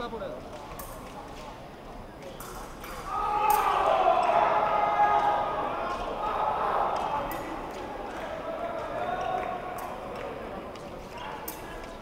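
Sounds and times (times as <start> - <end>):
loud shouting voices: 3.1 - 12.0.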